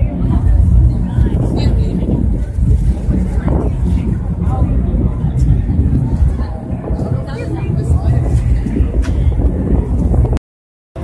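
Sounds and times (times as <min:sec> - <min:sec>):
faint voices: 0:00.0 - 0:10.4
wind buffeting microphone: 0:00.0 - 0:10.4.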